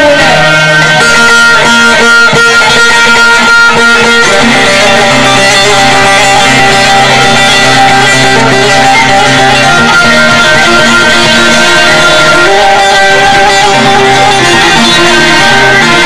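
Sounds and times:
plucked lute folk music: 0.0 - 16.0.

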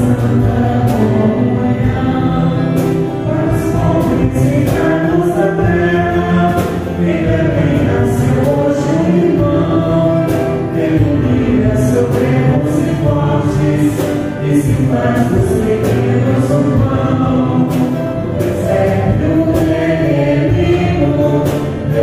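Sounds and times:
keyboard accompaniment: 0.0 - 22.0
voices singing a hymn: 0.0 - 22.0.

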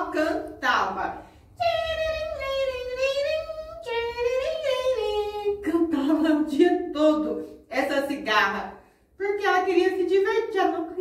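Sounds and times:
woman singing: 1.6 - 6.8.

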